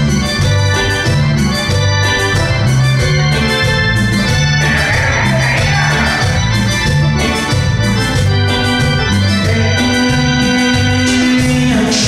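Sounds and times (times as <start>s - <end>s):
electric bass guitar notes: 0.0s - 12.0s
electronic keyboard organ sound: 0.0s - 12.0s.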